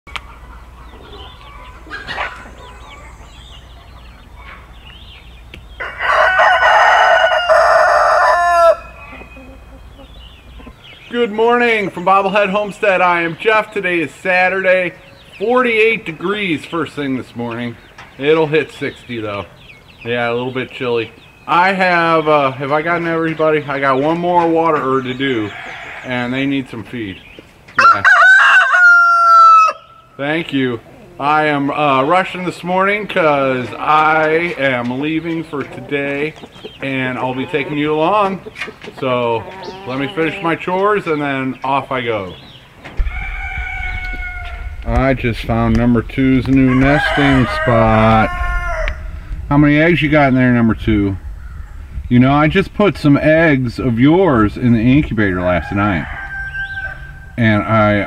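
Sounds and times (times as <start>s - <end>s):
small birds chirping: 0.1s - 28.0s, 29.8s - 58.0s
rooster crowing: 5.8s - 9.7s, 25.5s - 26.1s, 27.8s - 30.0s, 43.0s - 44.9s, 46.4s - 49.3s, 51.2s - 52.0s, 55.5s - 57.4s.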